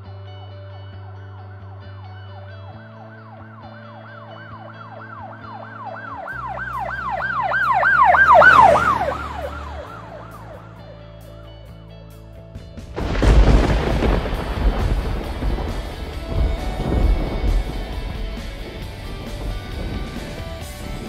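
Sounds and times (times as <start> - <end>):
background music with low notes: 0.0 - 21.0
siren wailing: 1.5 - 11.0.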